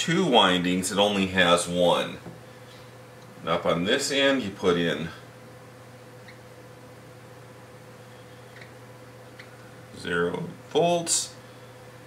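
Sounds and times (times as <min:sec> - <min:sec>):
steady low hum: 0:00.0 - 0:12.0
marker squeaking on whiteboard: 0:06.2 - 0:06.5, 0:08.5 - 0:08.8.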